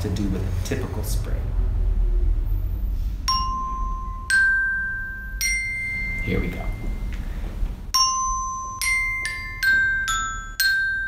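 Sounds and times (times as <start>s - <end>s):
toy glockenspiel notes: 3.3s - 7.2s, 7.9s - 11.0s.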